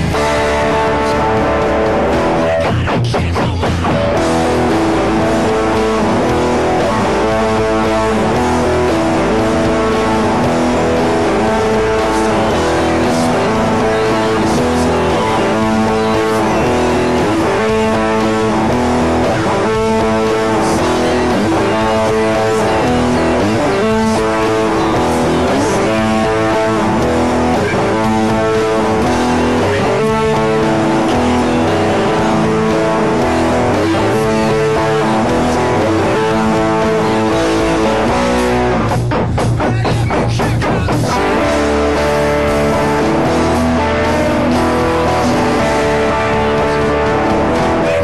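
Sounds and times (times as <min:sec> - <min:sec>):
electric guitar rock riff: 0:00.0 - 0:48.0.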